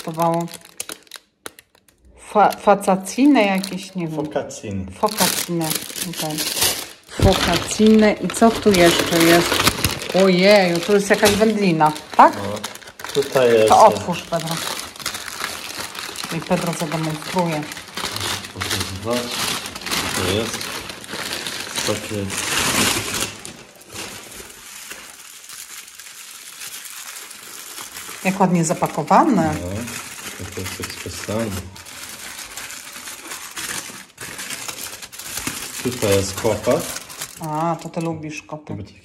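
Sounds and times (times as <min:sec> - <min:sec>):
plastic bag crinkling: 0:00.0 - 0:04.4, 0:05.0 - 0:38.2.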